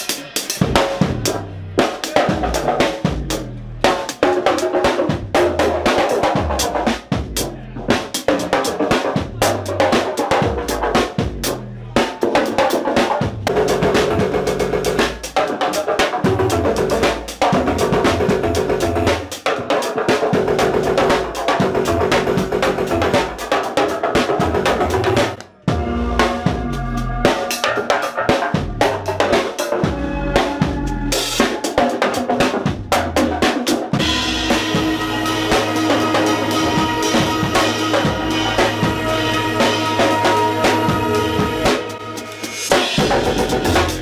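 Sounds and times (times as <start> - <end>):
drum kit played fast: 0.0 - 44.0.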